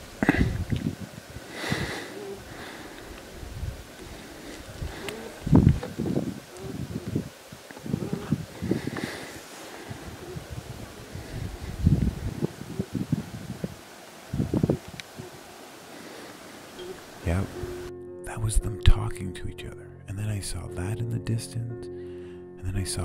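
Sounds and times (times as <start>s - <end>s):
beaver gnawing on twig: 2.4s - 10.0s.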